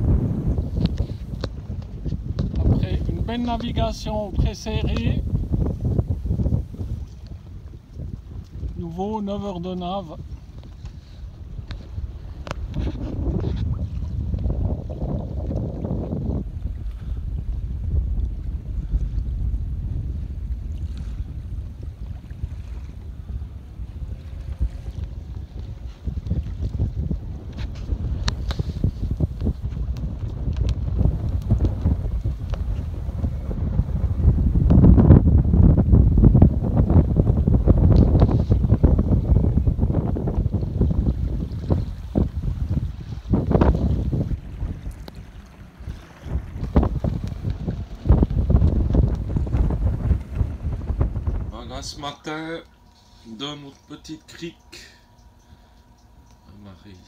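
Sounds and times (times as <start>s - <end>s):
wash of open water: 0.0s - 57.0s
wind buffeting microphone: 0.0s - 57.0s.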